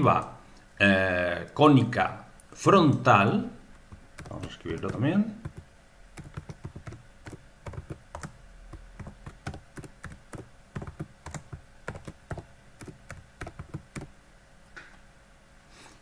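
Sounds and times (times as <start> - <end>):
computer keyboard typing: 3.8 - 14.1.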